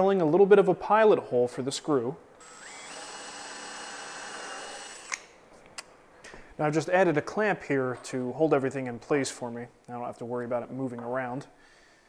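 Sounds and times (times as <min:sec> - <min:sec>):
cordless drill boring into wood: 0:02.4 - 0:05.3
drill click: 0:02.4 - 0:05.3.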